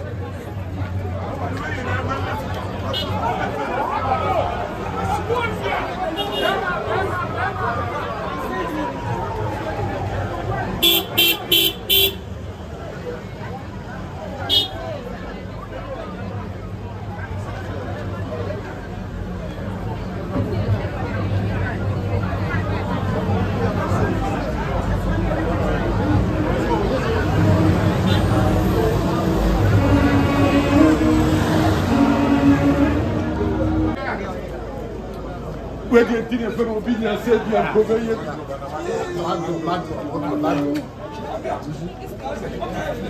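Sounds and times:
crowd chatter: 0.0s - 43.0s
car horn beeps: 10.8s - 12.2s.

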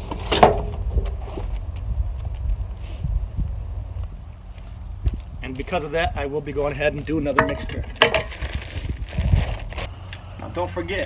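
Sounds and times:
wind on microphone: 0.6s - 10.0s.

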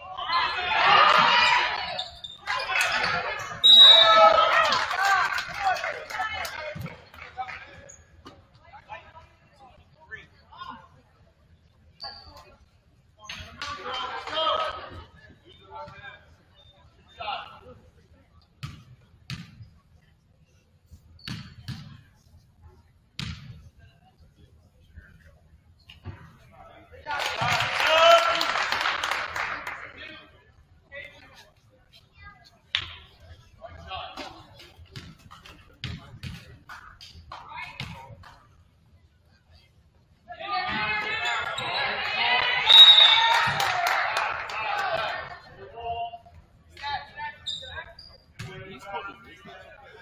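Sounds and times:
high whistle: 3.6s - 4.2s, 42.7s - 43.4s
crowd shouting: 40.5s - 45.4s.

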